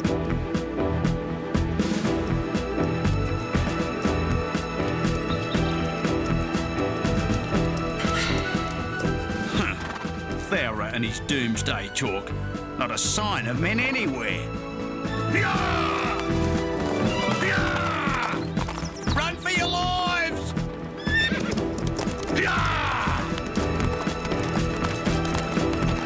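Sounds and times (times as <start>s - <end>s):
background music: 0.0s - 26.0s
galloping hooves: 1.6s - 10.6s, 15.4s - 26.0s
horse whinnying: 15.1s - 18.8s, 20.9s - 23.4s.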